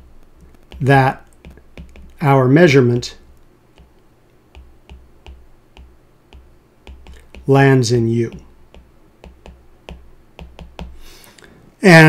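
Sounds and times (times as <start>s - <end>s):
stylus tapping glass screen: 0.0s - 11.1s.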